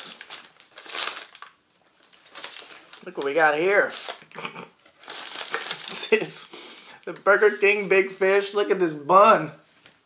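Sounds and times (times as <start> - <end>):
paper wrapper crinkling: 0.0 - 8.2.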